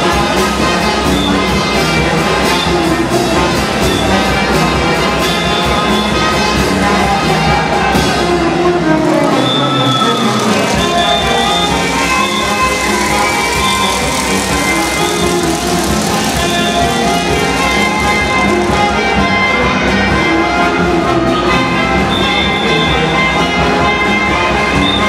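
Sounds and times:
brass band playing: 0:00.0 - 0:25.0.

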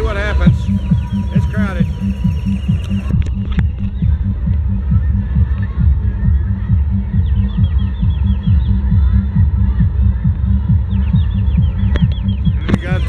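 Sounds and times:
deep fast drumbeat: 0:00.0 - 0:13.0.

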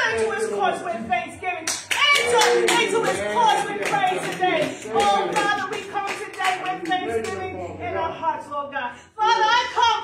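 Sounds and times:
hands clapping: 0:01.6 - 0:07.5.

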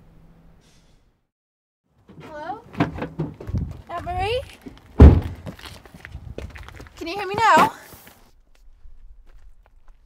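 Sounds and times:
vehicle door shutting: 0:05.0 - 0:05.4.

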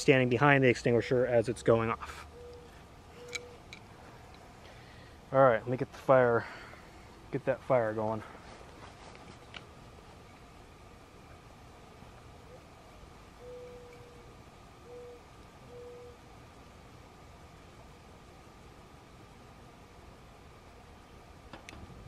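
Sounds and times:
faint outdoor hum: 0:00.0 - 0:22.0
bird hooting: 0:02.2 - 0:03.6, 0:12.4 - 0:12.8, 0:13.4 - 0:16.3.

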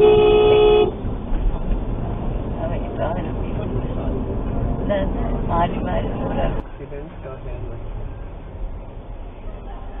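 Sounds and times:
vehicle horn blast: 0:00.0 - 0:01.0
car driving rumble: 0:00.0 - 0:10.0.

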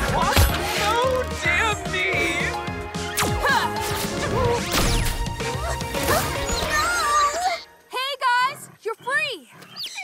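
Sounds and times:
cartoon action music: 0:00.0 - 0:07.6.

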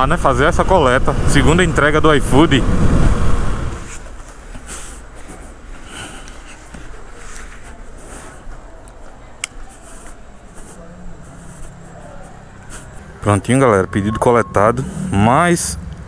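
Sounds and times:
faint distant voices: 0:04.0 - 0:15.6.

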